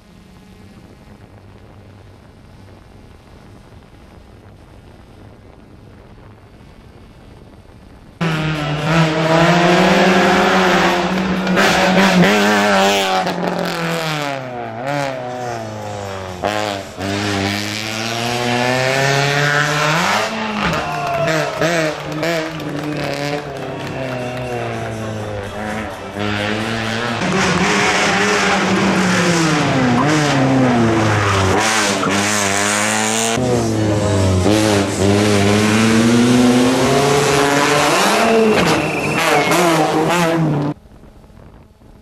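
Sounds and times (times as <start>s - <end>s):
faint steady hiss: 0.0s - 8.2s
rally car engine revving: 8.2s - 40.8s.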